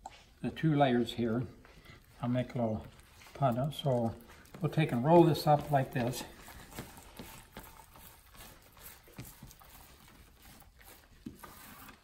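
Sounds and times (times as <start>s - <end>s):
gloved hands rolling cloth: 0.5s - 12.0s.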